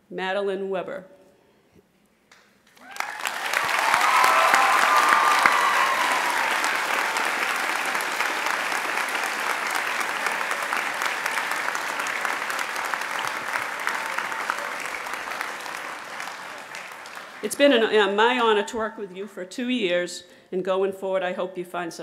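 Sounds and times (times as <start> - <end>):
audience clapping: 2.6 - 18.2
audience cheering: 2.8 - 17.7.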